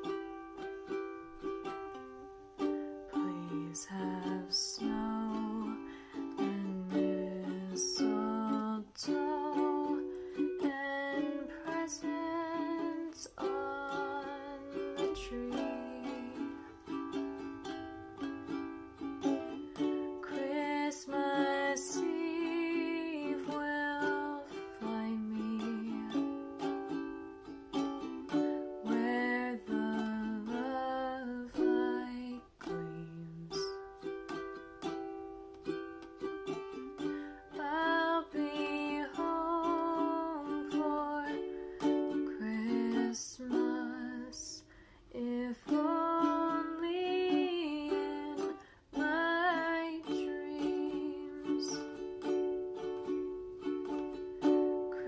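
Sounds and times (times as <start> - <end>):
ukulele strumming chords: 0.0 - 55.0
woman singing: 1.4 - 18.6, 19.2 - 27.2, 28.3 - 34.0, 36.3 - 55.0.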